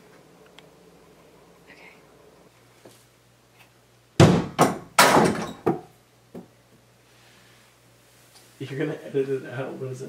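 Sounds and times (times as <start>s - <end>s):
ball hitting backboard and rim: 4.2s - 5.8s.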